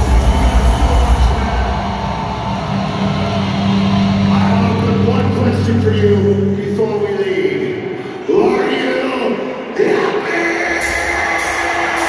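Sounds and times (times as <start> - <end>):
live metal band: 0.0 - 6.7, 10.7 - 12.0.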